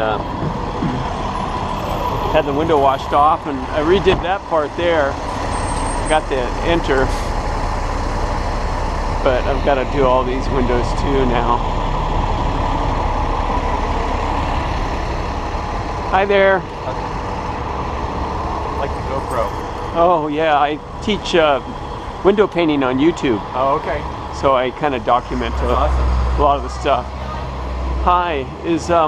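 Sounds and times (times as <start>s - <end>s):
bus engine running: 0.0s - 29.0s
passing street traffic: 0.0s - 29.0s.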